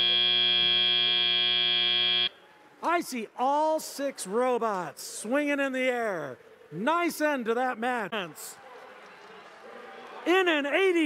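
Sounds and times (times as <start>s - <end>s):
loud steady buzzer: 0.0s - 2.3s.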